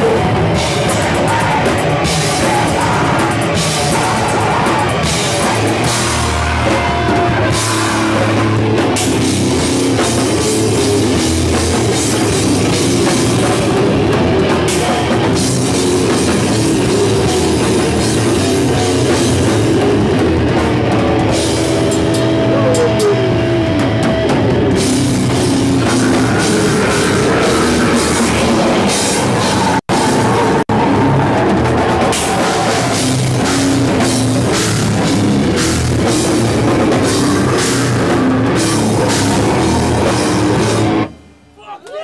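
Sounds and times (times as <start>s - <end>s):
grindcore band playing loud: 0.0s - 41.4s.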